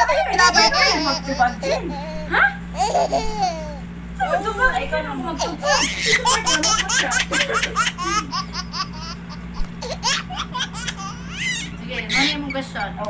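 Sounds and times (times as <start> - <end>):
steady low hum: 0.0 - 13.0
hearty laughter: 5.4 - 11.0.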